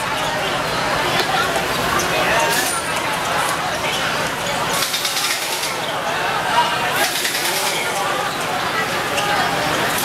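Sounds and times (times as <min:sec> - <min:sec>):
people shouting and chattering: 0:00.0 - 0:10.0.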